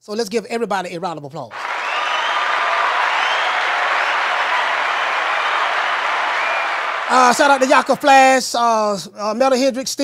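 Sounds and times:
crowd applause: 0:01.5 - 0:08.4
person talking: 0:07.1 - 0:09.0.

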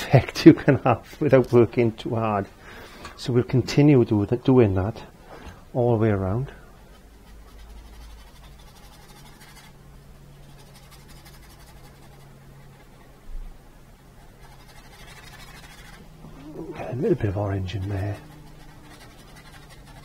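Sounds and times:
low electrical hum: 0:00.0 - 0:20.0
paintbrush brushing on canvas: 0:06.9 - 0:09.8, 0:14.2 - 0:20.0.

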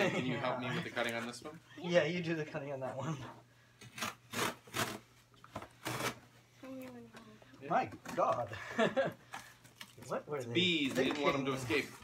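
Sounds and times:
scissors cutting cardboard: 0:03.8 - 0:05.0, 0:05.8 - 0:06.2.

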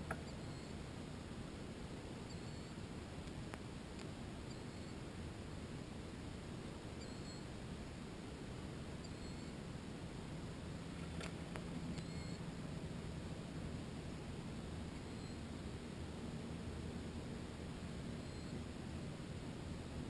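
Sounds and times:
small bird chirping: 0:00.0 - 0:00.8, 0:02.2 - 0:02.8, 0:04.4 - 0:05.0, 0:07.0 - 0:07.5, 0:09.0 - 0:09.6, 0:11.9 - 0:12.4, 0:14.9 - 0:15.5, 0:18.2 - 0:18.6
low outdoor background noise: 0:00.0 - 0:20.0.

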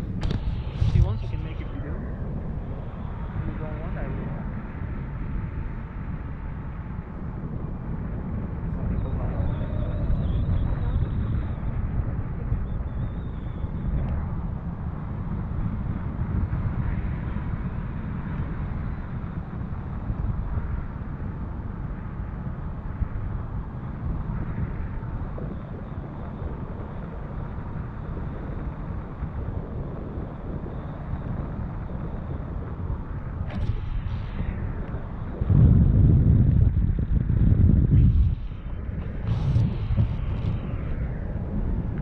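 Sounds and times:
wind rumbling on microphone: 0:00.0 - 0:42.0.

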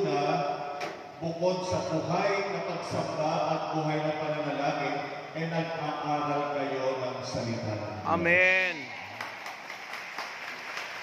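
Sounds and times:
congregation applauding: 0:08.6 - 0:11.0.

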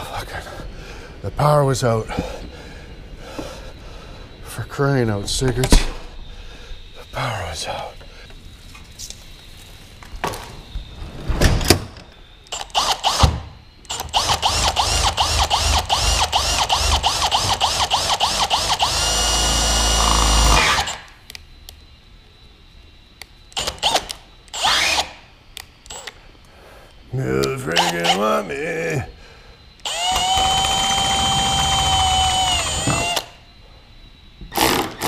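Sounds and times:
cordless drill pulsing and whining: 0:12.5 - 0:21.1, 0:23.6 - 0:25.2, 0:25.9 - 0:26.2, 0:29.8 - 0:33.4.

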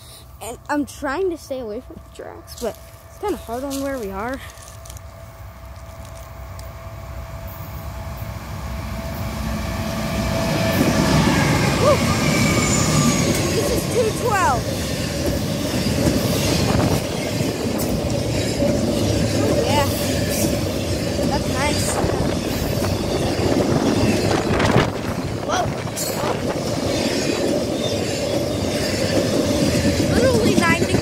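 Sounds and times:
train wheels rumbling on rails: 0:00.0 - 0:31.0.

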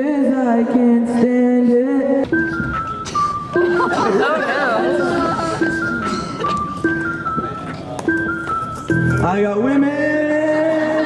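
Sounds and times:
simple repeating melody: 0:02.2 - 0:11.0.

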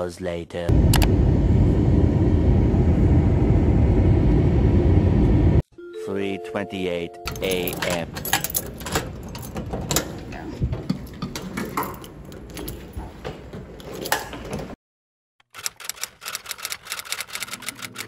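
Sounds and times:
door lock clicking and rattling: 0:07.3 - 0:10.2.

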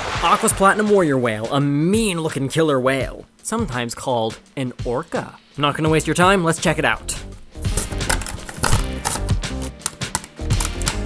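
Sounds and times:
background music: 0:00.0 - 0:11.0
plastic crackling: 0:07.3 - 0:11.0
cardboard ripping: 0:07.7 - 0:11.0.

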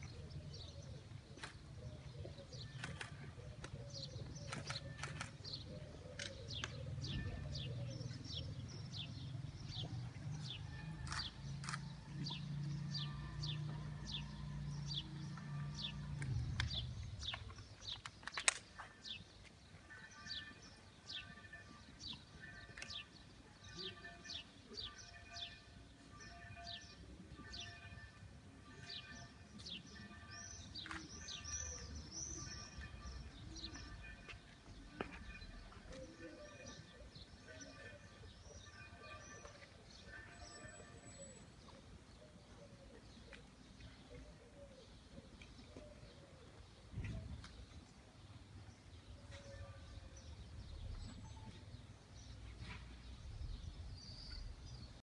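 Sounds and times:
small birds chirping: 0:00.0 - 0:09.9.

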